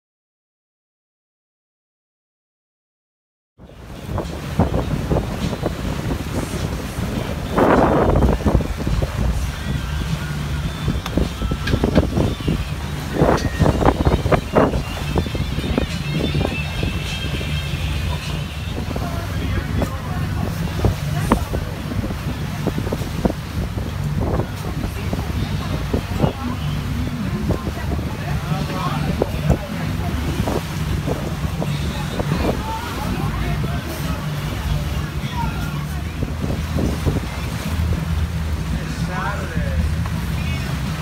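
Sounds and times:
boat engine running: 0:03.6 - 0:41.0
loud rush of wind or water: 0:03.6 - 0:41.0
wind on microphone: 0:03.6 - 0:41.0.

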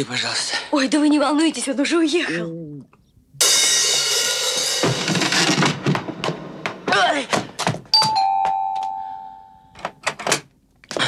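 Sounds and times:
lively film music with drums: 0:03.4 - 0:06.9
electric doorbell chime: 0:08.0 - 0:09.8.

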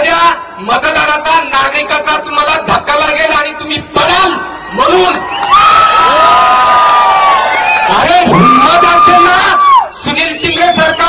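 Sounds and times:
crowd cheering: 0:04.4 - 0:11.0.

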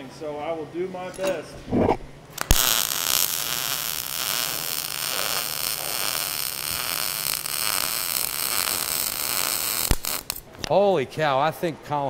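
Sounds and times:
welding arc crackling buzz: 0:02.2 - 0:10.7.

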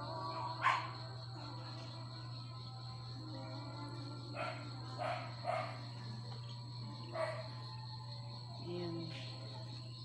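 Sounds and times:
crickets trilling: 0:00.0 - 0:10.0
dog barking: 0:00.6 - 0:01.0, 0:04.4 - 0:05.8, 0:07.1 - 0:07.5.

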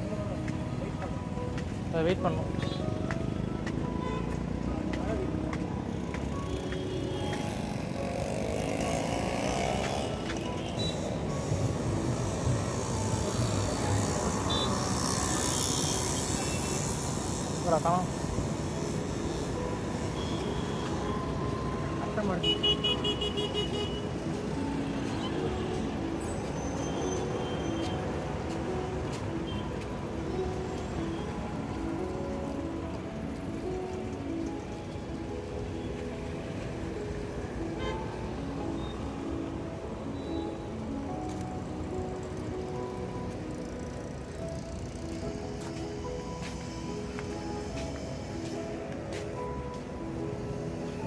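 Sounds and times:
background music melody: 0:00.0 - 0:51.0
city traffic noise: 0:00.0 - 0:51.0.

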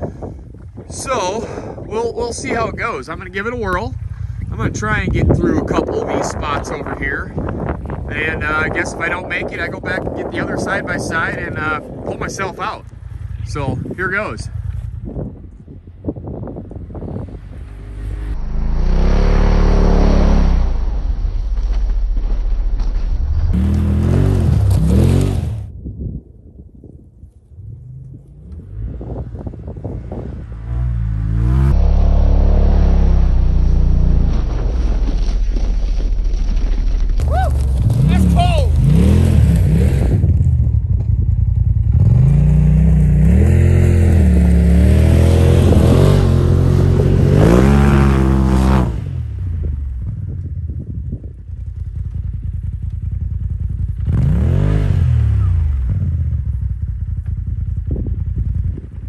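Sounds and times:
vehicle engine revving: 0:16.8 - 0:25.7, 0:27.6 - 0:35.7, 0:37.6 - 0:50.4, 0:51.8 - 0:59.0.

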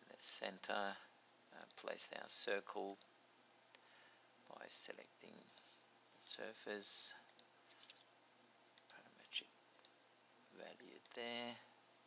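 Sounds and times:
faint computer mouse clicks: 0:09.7 - 0:10.0.

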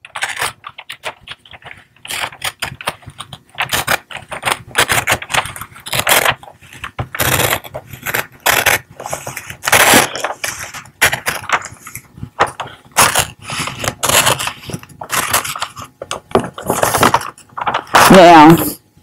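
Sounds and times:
scissors snipping paper: 0:00.0 - 0:18.4
paper crinkling and rustling: 0:00.0 - 0:18.5.

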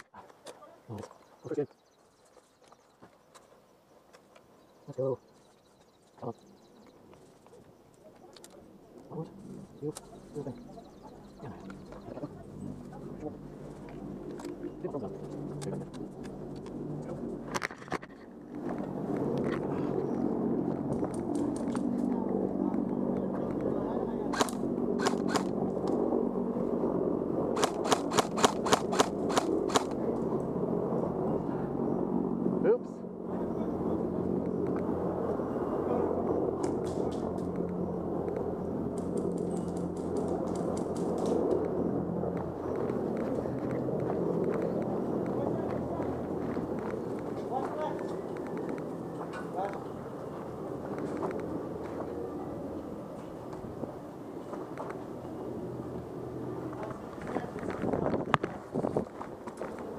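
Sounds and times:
steady background noise: 0:00.0 - 0:59.9
airsoft gun shots: 0:24.3 - 0:25.5, 0:27.6 - 0:29.9.

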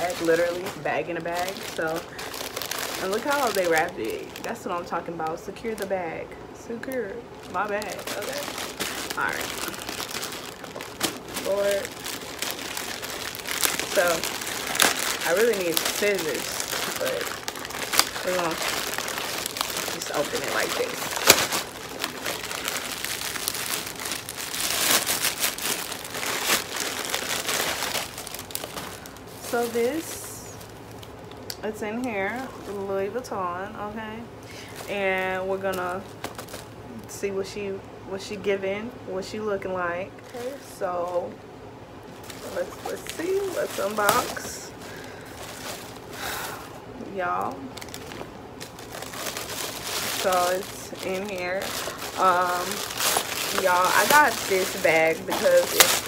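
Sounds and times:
plastic packaging crinkling: 0:00.0 - 0:33.2, 0:34.4 - 0:36.8, 0:40.2 - 0:41.4, 0:42.1 - 0:56.0.

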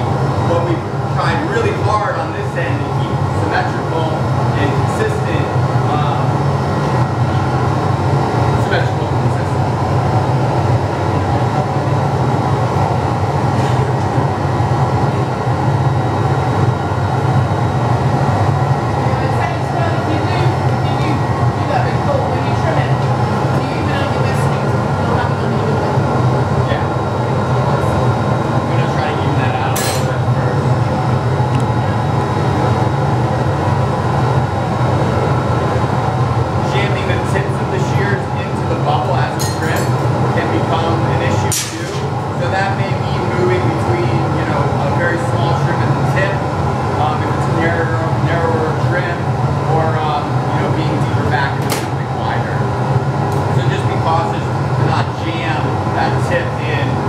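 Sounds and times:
gas furnace burners roaring: 0:00.0 - 0:57.0
metal tools clinking on blowpipe: 0:29.7 - 0:30.2, 0:39.4 - 0:40.1.

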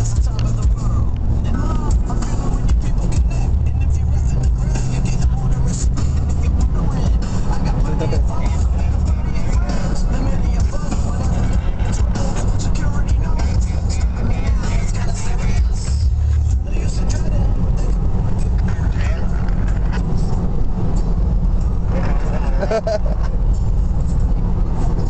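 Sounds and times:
car interior road rumble: 0:00.0 - 0:25.0.

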